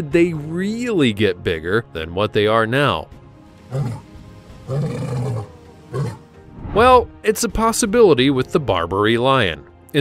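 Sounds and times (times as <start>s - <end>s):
lion grunting: 3.6s - 6.3s.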